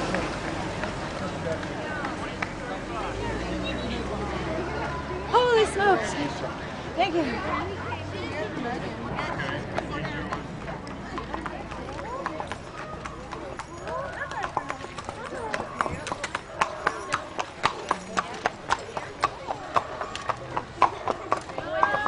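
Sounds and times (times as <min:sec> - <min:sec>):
horse hooves clip-clopping on road: 0:00.0 - 0:03.1, 0:08.5 - 0:22.0.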